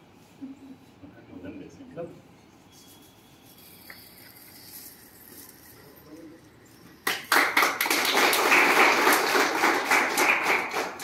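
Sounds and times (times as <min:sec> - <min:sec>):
people clapping: 0:07.0 - 0:11.0.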